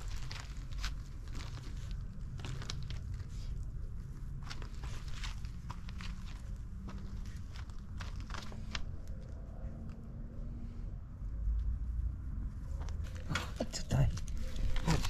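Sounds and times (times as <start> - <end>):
puppy rustling in grass and gravel: 0.0 - 9.3
steady low rumble: 0.0 - 15.0.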